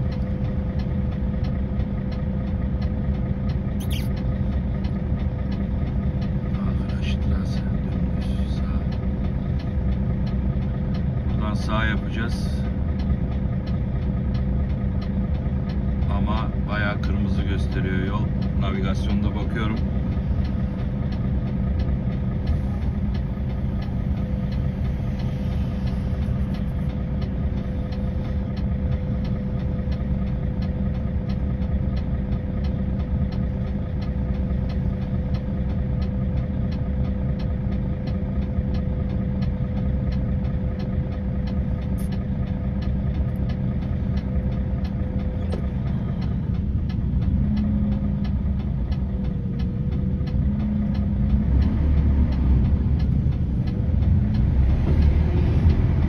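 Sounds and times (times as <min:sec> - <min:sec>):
diesel truck engine idling: 0:00.0 - 0:56.0.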